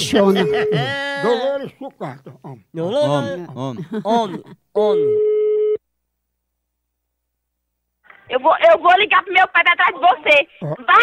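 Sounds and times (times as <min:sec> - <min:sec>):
telephone line tone: 0:00.4 - 0:01.0, 0:04.9 - 0:05.8.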